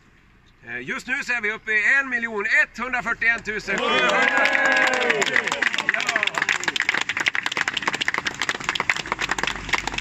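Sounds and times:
crowd clapping and cheering: 3.7 - 10.0
car passing: 7.1 - 10.0.

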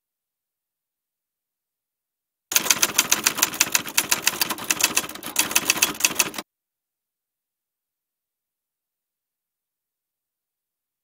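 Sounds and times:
typewriter keys clacking: 2.5 - 6.4.

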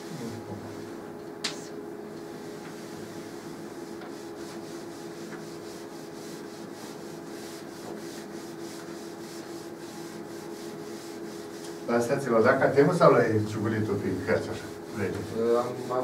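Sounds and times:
steady low hum: 0.0 - 16.0
cloth wiping blackboard: 2.2 - 16.0.

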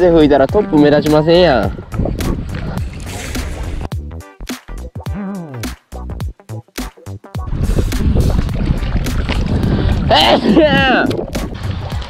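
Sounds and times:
faint background music: 0.0 - 1.9
wind buffeting microphone: 0.0 - 3.9, 7.4 - 12.0.

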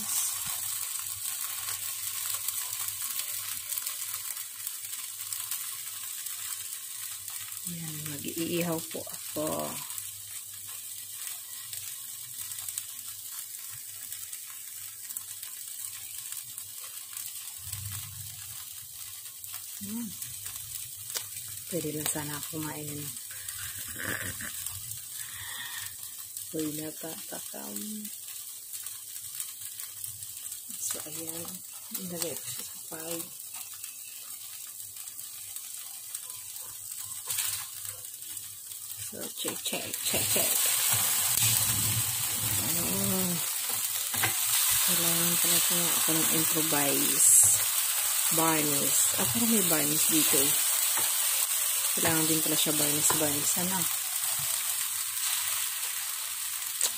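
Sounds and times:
meat sizzling on a grill: 0.0 - 56.9.

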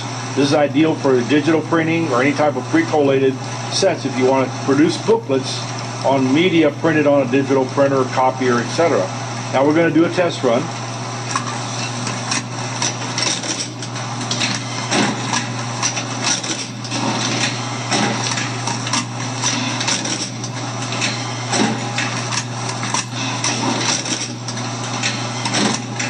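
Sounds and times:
steady motor hum: 0.0 - 26.0
machine clacks and knocks: 11.4 - 26.0.

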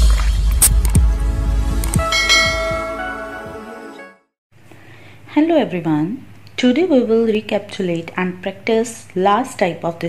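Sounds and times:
bright bell-like chime: 2.0 - 3.4.

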